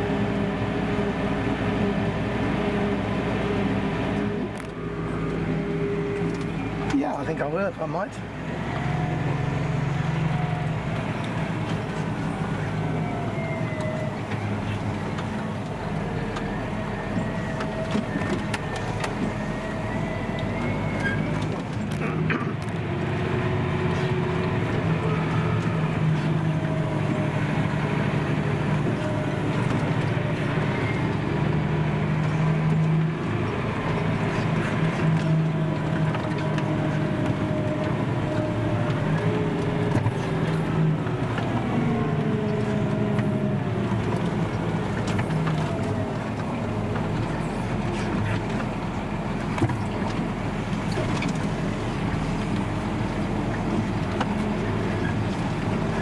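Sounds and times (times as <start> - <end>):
tractor engine running: 0.0 - 56.0
transmission and cab noise: 0.0 - 56.0.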